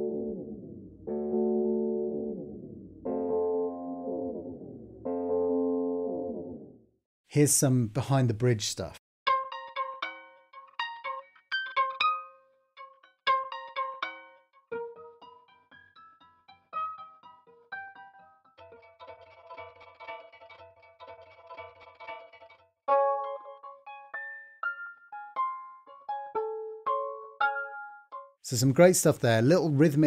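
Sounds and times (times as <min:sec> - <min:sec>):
plucked electric guitar notes: 0:00.0 - 0:06.8, 0:09.3 - 0:28.3.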